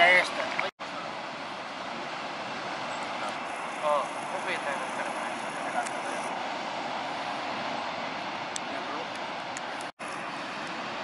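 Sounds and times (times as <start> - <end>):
distant surf roar: 0.0 - 11.0.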